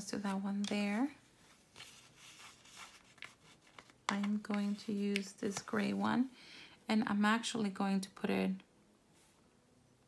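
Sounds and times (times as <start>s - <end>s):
paper sheet rustling: 1.4s - 6.0s.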